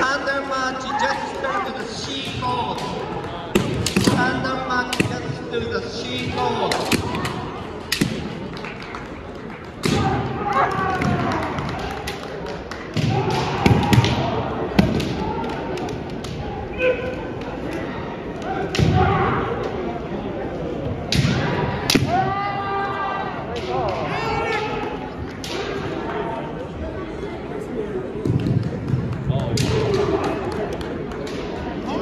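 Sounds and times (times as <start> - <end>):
murmur of large hall: 0.0 - 32.0.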